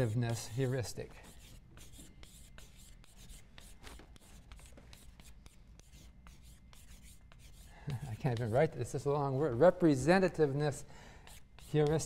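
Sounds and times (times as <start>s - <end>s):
chalk scratching on blackboard: 0.0s - 10.5s, 11.2s - 12.0s.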